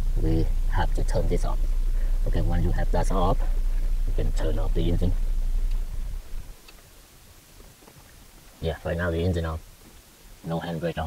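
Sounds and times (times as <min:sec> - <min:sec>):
car engine idling: 0:00.0 - 0:11.0
faint clicks: 0:06.6 - 0:06.9.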